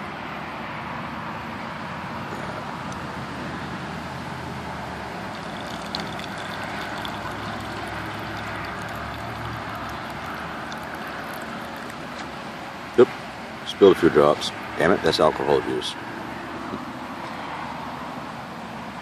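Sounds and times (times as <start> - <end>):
distant road traffic: 0.0 - 19.0
liquid pouring into plastic cup: 5.1 - 12.2.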